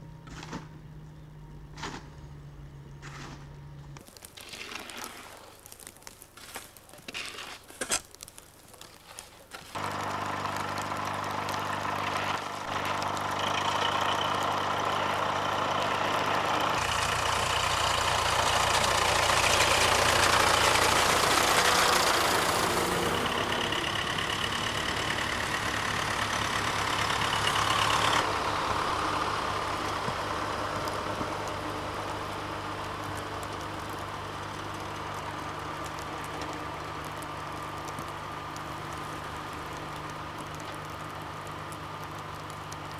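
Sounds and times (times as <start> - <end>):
snowplough blade pushing snow: 1.7 - 2.2, 3.0 - 42.9
tractor engine running: 8.2 - 42.9.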